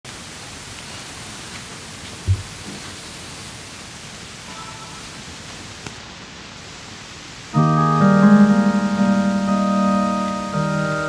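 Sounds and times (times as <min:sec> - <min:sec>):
steady even hiss: 0:00.1 - 0:11.0.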